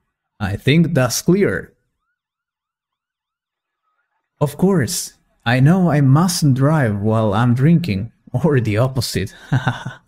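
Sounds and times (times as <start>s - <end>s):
faint yelping siren: 1.6s - 4.4s.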